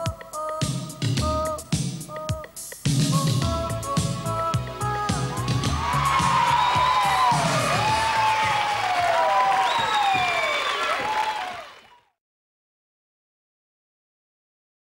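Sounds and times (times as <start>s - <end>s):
disco song: 0.0s - 9.2s
high overlapping shouts: 5.3s - 9.4s
audience applauding and cheering: 5.3s - 12.2s.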